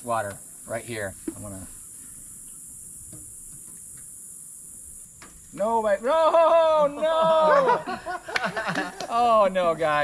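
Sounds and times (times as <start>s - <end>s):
rainforest insects droning: 0.0s - 10.0s.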